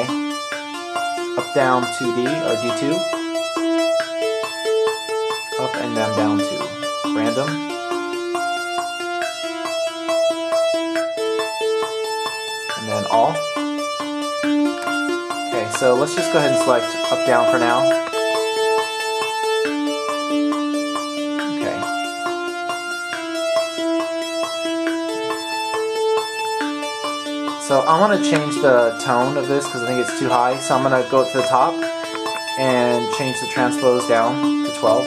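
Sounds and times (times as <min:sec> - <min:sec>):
synthesizer arpeggio: 0:00.0 - 0:35.0.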